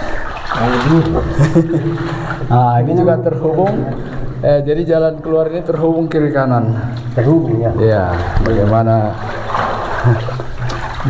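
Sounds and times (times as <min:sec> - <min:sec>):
feet splashing through water: 0:00.0 - 0:02.8, 0:06.6 - 0:11.0.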